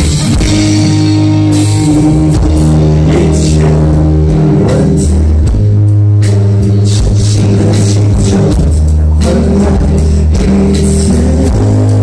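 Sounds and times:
bass guitar: 0.0 - 12.0
drums with cymbal hits: 0.0 - 12.0
electric guitar chords: 0.0 - 12.0.

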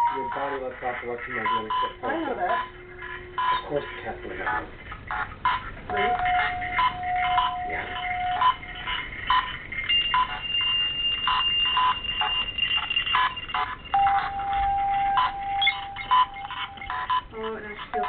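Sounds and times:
long steady tones: 0.0 - 18.0.

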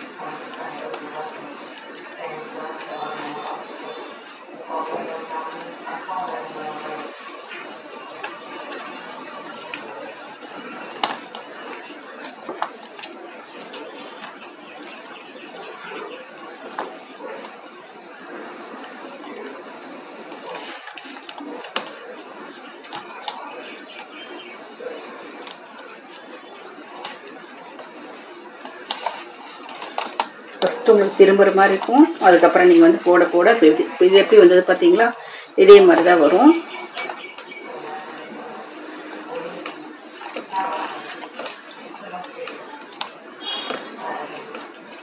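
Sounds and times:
faint background voices: 0.0 - 45.0.

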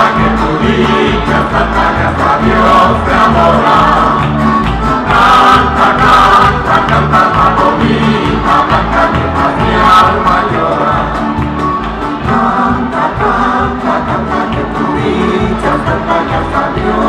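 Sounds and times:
accordion: 0.0 - 17.0
electric bass: 0.0 - 17.0
group of voices singing: 0.0 - 17.0
strummed guitars and lutes: 0.0 - 17.0.

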